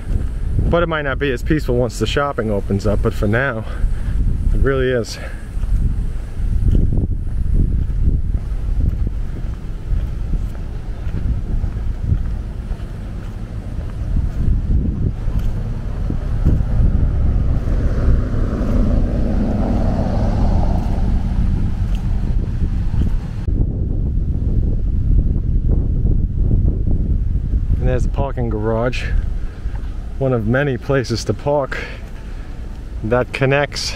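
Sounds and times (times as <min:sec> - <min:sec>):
wind buffeting microphone: 0:00.0 - 0:33.9
car passing: 0:03.4 - 0:23.5.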